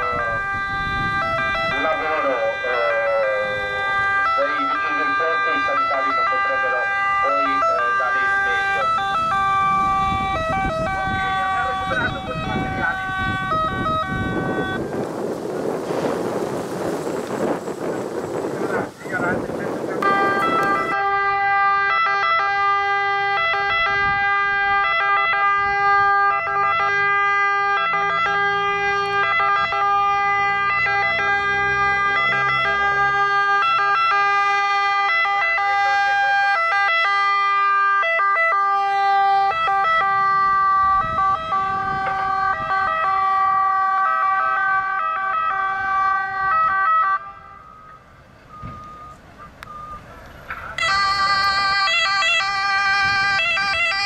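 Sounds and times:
two-tone ambulance siren: 0:00.0 - 0:15.3, 0:17.3 - 0:54.0.

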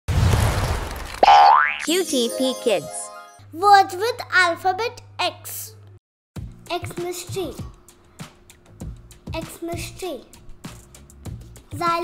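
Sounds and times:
springy boing rising in pitch: 0:01.2 - 0:01.9.

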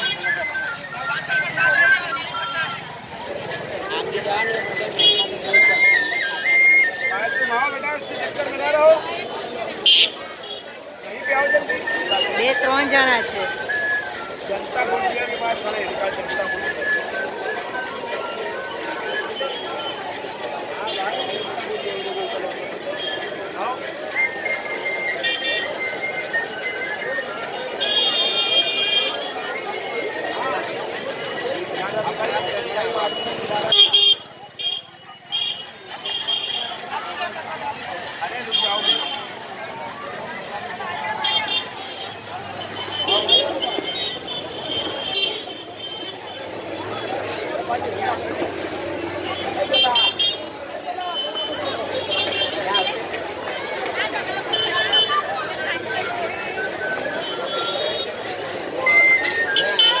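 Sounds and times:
crowd chatter: 0:00.0 - 1:00.0.

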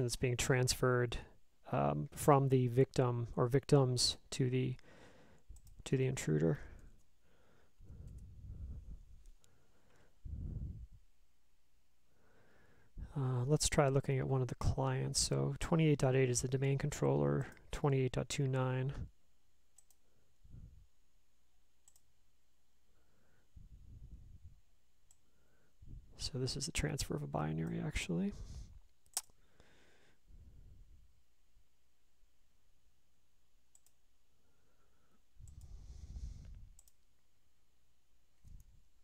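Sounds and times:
computer mouse clicks: 0:05.4 - 0:05.8, 0:08.0 - 0:08.3, 0:19.7 - 0:20.0, 0:21.8 - 0:22.1, 0:29.0 - 0:29.4, 0:33.7 - 0:34.0, 0:35.4 - 0:35.8, 0:36.4 - 0:37.0
faint computer mouse clicks: 0:19.8 - 0:20.0, 0:33.7 - 0:34.0.

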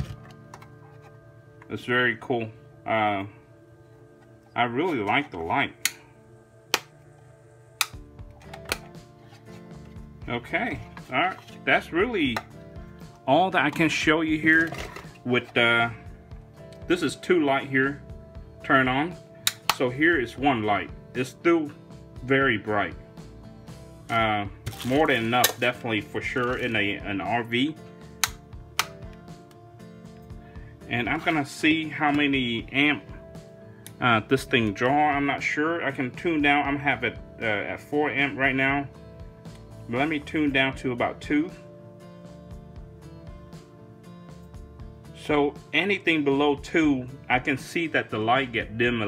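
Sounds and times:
faint music: 0:00.0 - 0:49.0.

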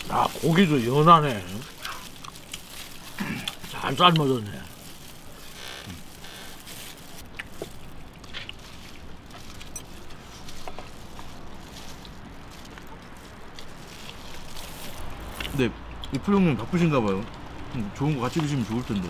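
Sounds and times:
person speaking: 0:00.0 - 0:02.2, 0:03.2 - 0:04.7
small clicks and rustles of eating: 0:00.0 - 0:19.0.

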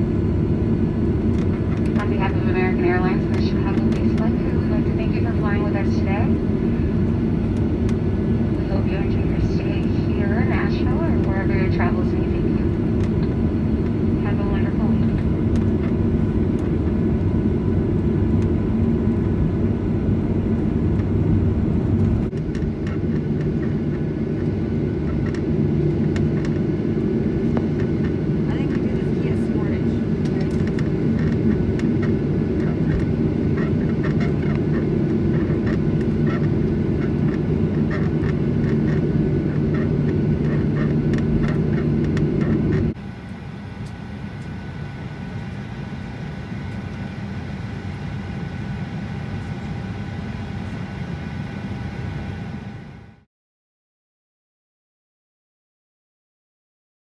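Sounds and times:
jet engine and cabin drone: 0:00.0 - 0:53.3.

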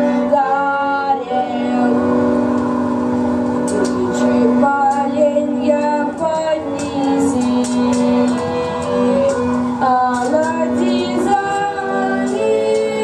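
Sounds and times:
woman singing long held notes: 0:00.0 - 0:13.0.

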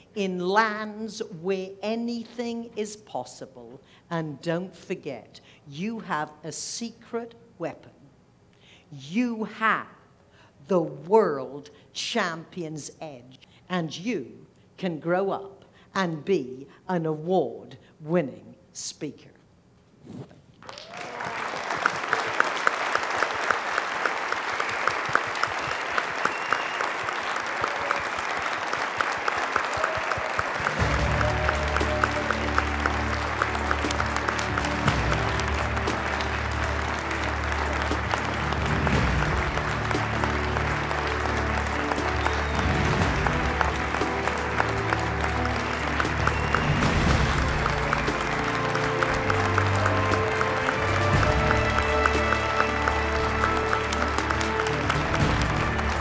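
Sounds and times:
audience applauding: 0:20.6 - 0:56.0.

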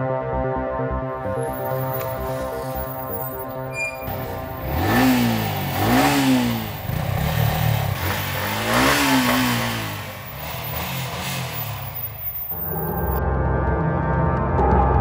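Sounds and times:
motorcycle engine revving: 0:01.2 - 0:13.2.

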